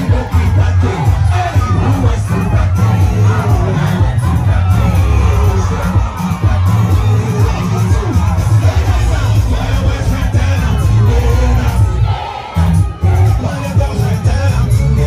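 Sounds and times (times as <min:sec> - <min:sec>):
crowd cheering and shouting: 0:00.0 - 0:15.0
loud music with heavy bass: 0:00.0 - 0:15.0.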